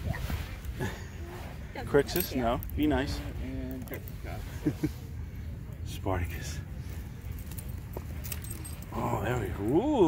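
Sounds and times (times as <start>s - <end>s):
metallic jingles and clicks: 1.8s - 4.2s, 6.8s - 10.0s.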